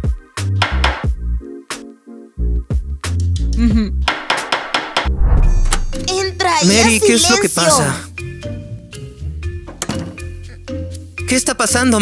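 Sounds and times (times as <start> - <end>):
background music with a beat: 0.0 - 2.0, 2.6 - 5.1
hammers striking wooden boards: 4.1 - 5.1.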